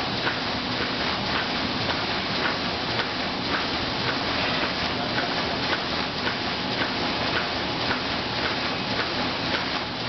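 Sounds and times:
laminating machine hissing: 0:00.0 - 0:10.0.

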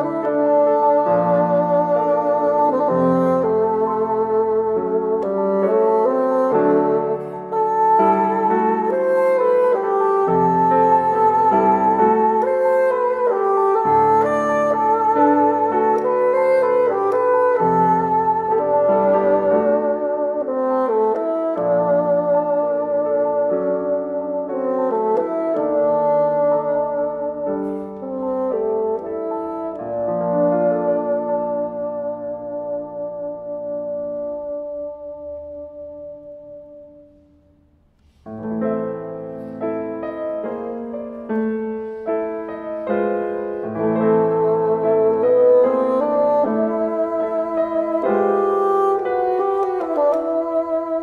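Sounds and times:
bassoon slow sustained notes: 0:00.0 - 0:37.3, 0:38.4 - 0:51.0
piano slow notes: 0:00.0 - 0:51.0.

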